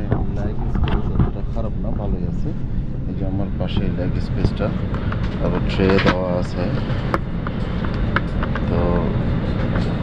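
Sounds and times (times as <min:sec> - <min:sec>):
person speaking: 0:00.0 - 0:06.9
airliner cabin rumble: 0:00.0 - 0:10.0.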